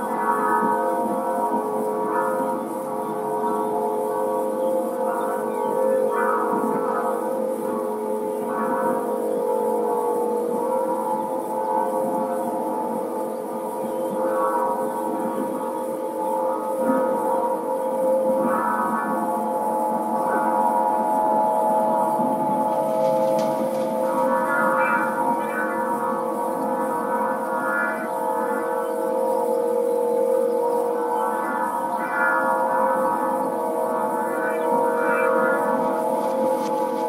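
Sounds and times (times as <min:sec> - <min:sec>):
wind harp drone: 0:00.0 - 0:37.0.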